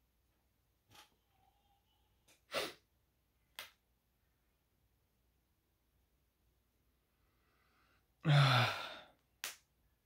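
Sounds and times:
person sniffing sharply: 0:02.5 - 0:02.9.

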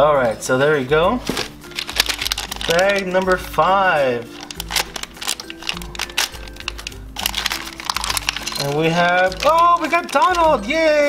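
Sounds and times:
soft background music: 0:00.0 - 0:11.0
plastic bag crinkling: 0:01.2 - 0:10.8.

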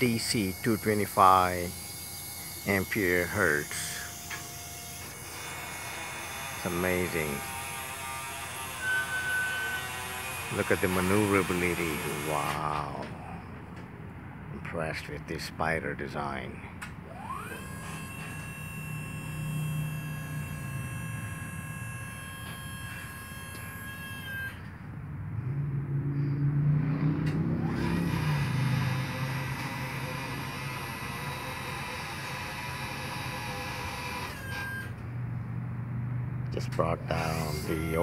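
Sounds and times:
hydraulic pump motor whine: 0:00.0 - 0:13.9, 0:16.9 - 0:25.0, 0:27.2 - 0:35.2, 0:36.6 - 0:38.0.

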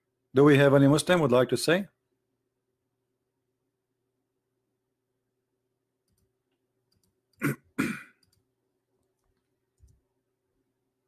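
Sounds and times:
faint electrical hum: 0:00.0 - 0:11.0
man coughing: 0:07.4 - 0:08.2.

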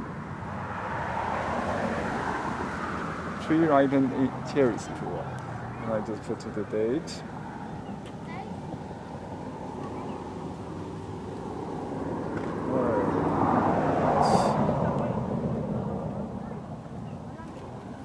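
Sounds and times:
passing engine drone: 0:00.0 - 0:18.0.

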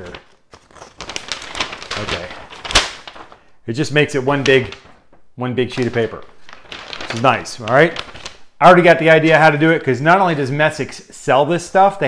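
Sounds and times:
paper rustling and crinkling: 0:00.0 - 0:08.6.

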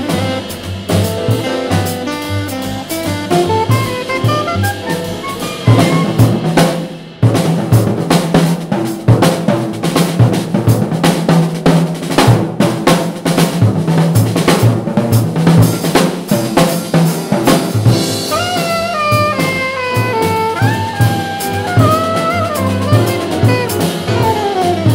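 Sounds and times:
alto saxophone: 0:00.0 - 0:06.6, 0:17.8 - 0:24.9
jazz drum solo: 0:00.0 - 0:24.9.

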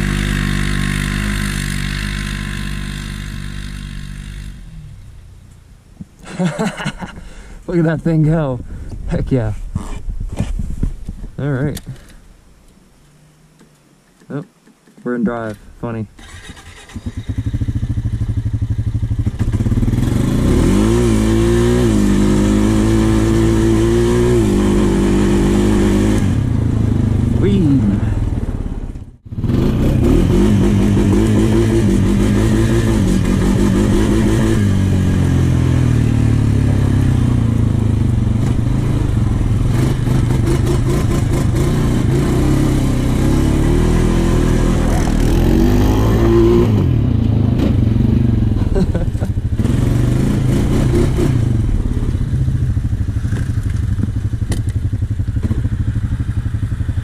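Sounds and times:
quad bike engine revving: 0:00.0 - 0:05.0, 0:16.2 - 0:57.0
clatter: 0:52.9 - 0:57.0.

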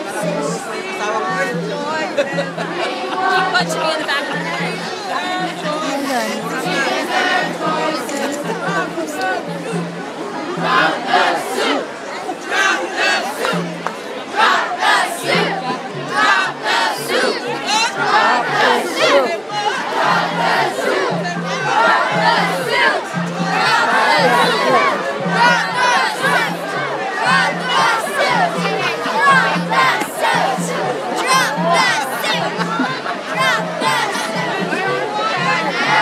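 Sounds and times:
low repeating beat: 0:00.0 - 0:11.8, 0:13.4 - 0:36.0
crowd shouting and chanting: 0:00.0 - 0:36.0.

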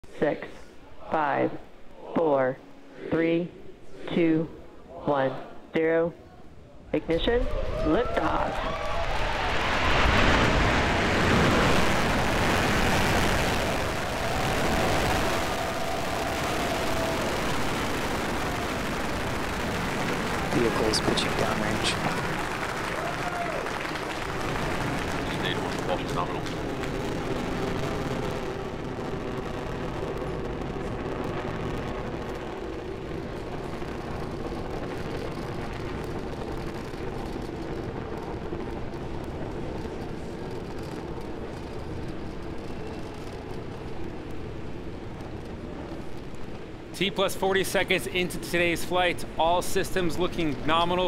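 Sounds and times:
rocket engines rushing: 0:07.0 - 0:51.0
voices and cheering: 0:07.2 - 0:27.6.

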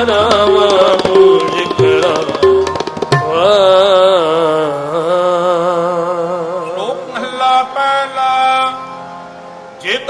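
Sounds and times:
harmonium held notes: 0:00.0 - 0:10.0.

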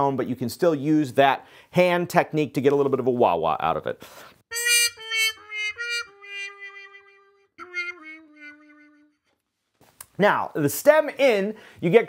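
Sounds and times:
muted trumpet playing: 0:04.5 - 0:09.3.

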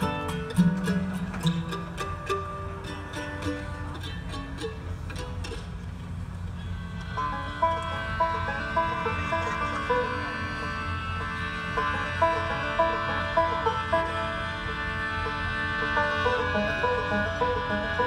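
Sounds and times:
bluegrass string band through pa: 0:00.0 - 0:18.0.

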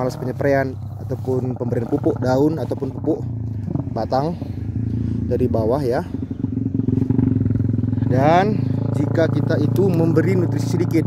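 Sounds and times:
engine running steadily: 0:00.0 - 0:11.0.

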